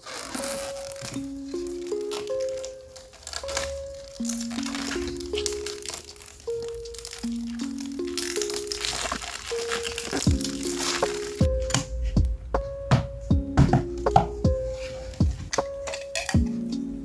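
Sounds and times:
plastic film crinkling: 0.0s - 11.5s
background music stepped melody: 0.0s - 17.0s.

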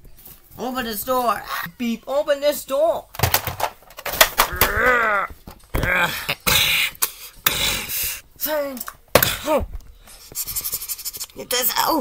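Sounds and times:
clicks and knocks of toys: 3.1s - 5.8s
person crying out: 4.4s - 6.4s
hissing mouth noises: 10.1s - 11.5s.

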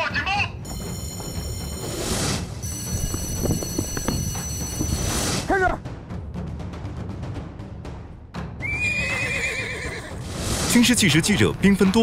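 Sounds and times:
background music: 0.0s - 12.0s
horse whinnying: 8.6s - 10.2s.

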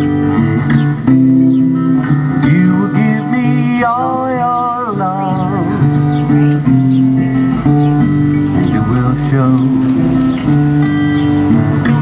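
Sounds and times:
song with guitar: 0.0s - 12.0s.

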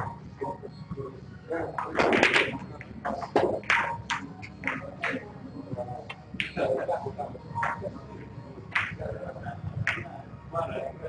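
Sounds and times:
low voices murmuring: 0.0s - 11.0s
snooker balls colliding: 1.8s - 5.2s, 8.7s - 9.1s.

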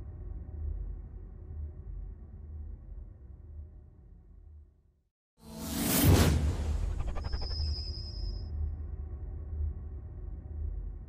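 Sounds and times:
whooshing sound effect: 5.5s - 8.2s.

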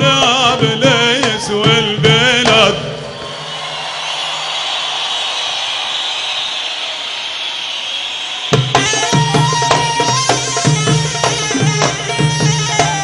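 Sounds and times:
folk-style band playing: 8.7s - 13.0s.

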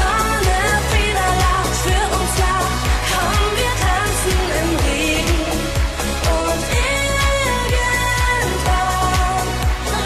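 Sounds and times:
upbeat pop song: 0.0s - 10.0s
woman singing: 0.0s - 10.0s.

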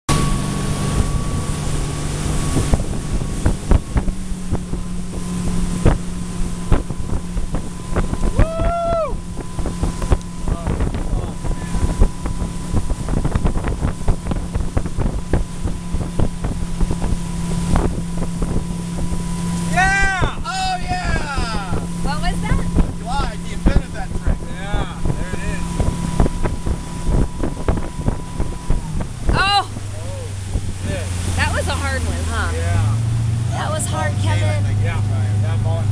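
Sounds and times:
boat engine running: 0.1s - 35.9s
water rushing in wake: 0.1s - 35.9s
wind buffeting microphone: 0.1s - 35.9s
person shouting: 8.4s - 9.2s, 19.7s - 21.7s.

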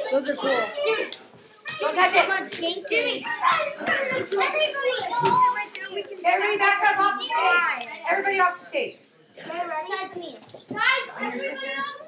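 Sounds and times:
children chattering and calling: 0.0s - 12.0s.

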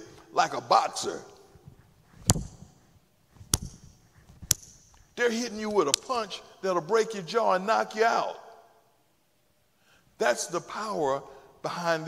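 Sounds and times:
sharp hand smacks: 2.2s - 2.7s, 3.5s - 4.7s.

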